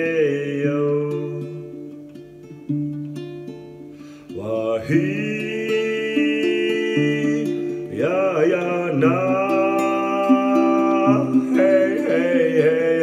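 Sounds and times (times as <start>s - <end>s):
man singing long held notes: 0.0s - 1.8s, 4.3s - 13.0s
acoustic guitar: 0.0s - 13.0s.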